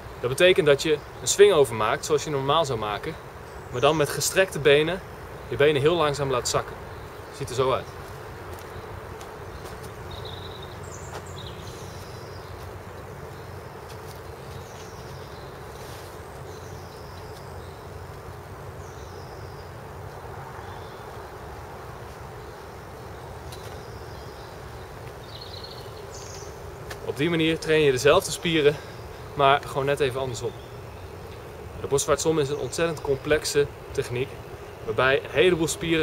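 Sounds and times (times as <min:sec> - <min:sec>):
birds chirping: 0:00.0 - 0:36.0
distant traffic rumble: 0:00.0 - 0:36.0.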